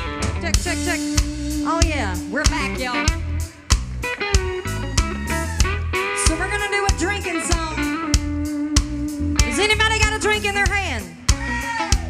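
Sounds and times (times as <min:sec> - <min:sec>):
bass line: 0:00.0 - 0:12.0
electric guitar bending notes: 0:00.0 - 0:12.0.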